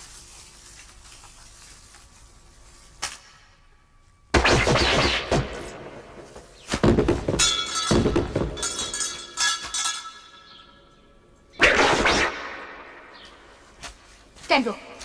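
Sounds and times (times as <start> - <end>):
sharp fight impacts: 4.4 - 5.8, 6.7 - 8.6
metallic ring: 7.4 - 11.0.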